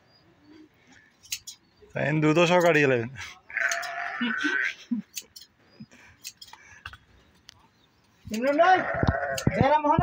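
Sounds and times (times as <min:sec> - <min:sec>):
goat bleating: 0:03.5 - 0:04.8, 0:08.4 - 0:09.8.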